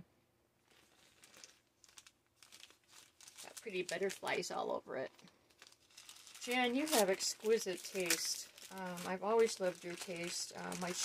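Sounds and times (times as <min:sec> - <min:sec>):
wrapping paper crinkling: 0:00.6 - 0:11.0.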